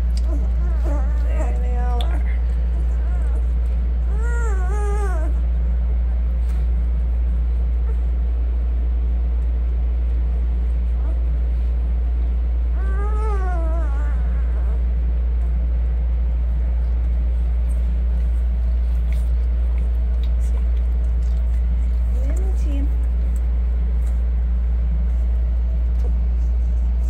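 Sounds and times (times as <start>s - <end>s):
puppy whining: 0.0s - 6.8s, 7.6s - 8.7s, 10.8s - 22.6s
steady low hum: 0.0s - 27.0s.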